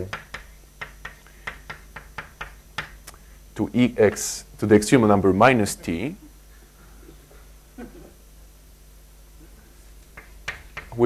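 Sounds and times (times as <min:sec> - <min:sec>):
chalk tapping on blackboard: 0:00.0 - 0:03.2, 0:04.0 - 0:04.4, 0:10.1 - 0:11.0.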